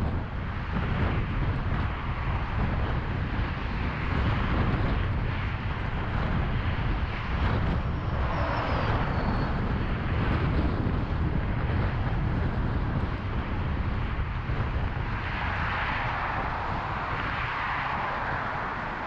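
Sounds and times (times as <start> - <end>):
car tyre and engine rumble: 0.0 - 19.0
traffic passing: 5.4 - 12.8, 13.7 - 19.0.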